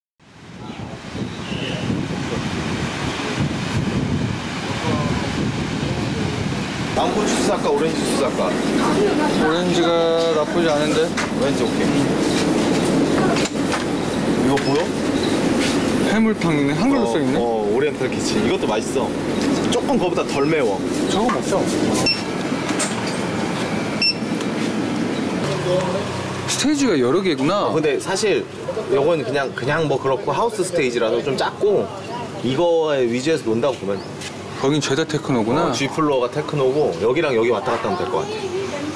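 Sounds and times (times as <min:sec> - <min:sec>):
wind buffeting microphone: 0:00.3 - 0:25.4
busy store ambience: 0:00.3 - 0:38.9
barcode scanner beep: 0:22.0 - 0:22.3, 0:23.9 - 0:24.3.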